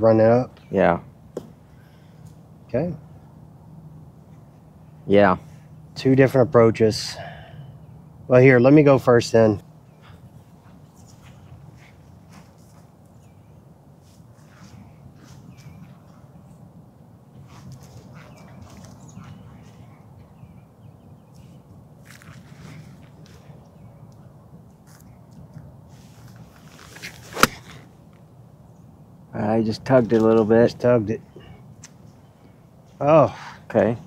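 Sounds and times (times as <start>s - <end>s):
light rustling: 24.8s - 28.2s
golf club striking ball: 26.9s - 27.9s.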